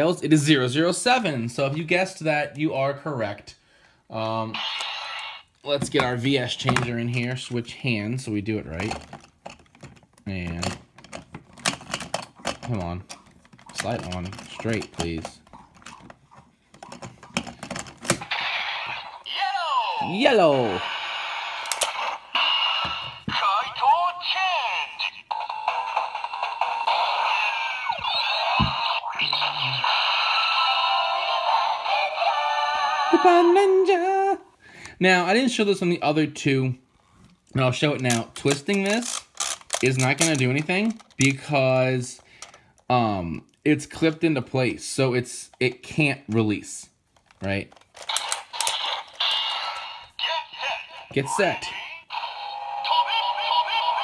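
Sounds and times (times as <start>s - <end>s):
harsh electronic tone: 18.2s - 33.6s
synthesized voice: 18.3s - 34.5s, 48.8s - 54.0s
plastic toy gun clicks: 38.1s - 41.4s, 47.8s - 49.2s
toy jingle music: 48.1s - 54.0s.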